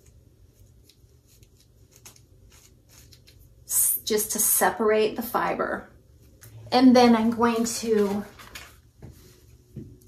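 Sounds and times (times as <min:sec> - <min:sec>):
brush bristles scratching wig: 0:00.0 - 0:03.7.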